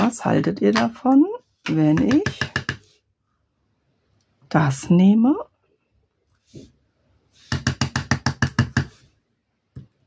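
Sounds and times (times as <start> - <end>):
rubber stamp knocking: 7.5 - 8.9.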